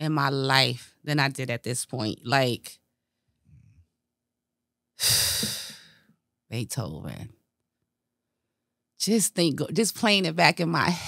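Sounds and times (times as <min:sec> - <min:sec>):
woman sighing heavily: 0:05.0 - 0:05.9.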